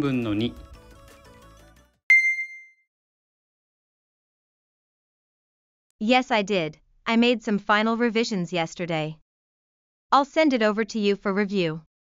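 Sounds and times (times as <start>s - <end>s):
bright chime ding: 2.1s - 2.8s.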